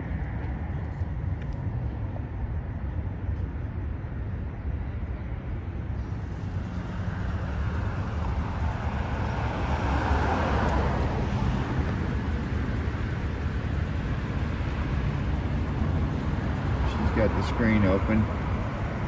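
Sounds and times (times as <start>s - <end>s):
street traffic rumble: 0.0s - 19.0s
vehicle passing: 6.0s - 19.0s.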